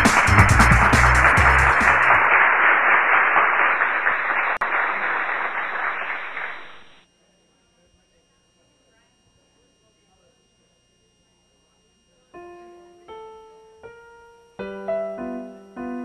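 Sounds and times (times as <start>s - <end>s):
electronic music with drum beat: 0.0s - 2.2s
crowd applause: 0.0s - 7.0s.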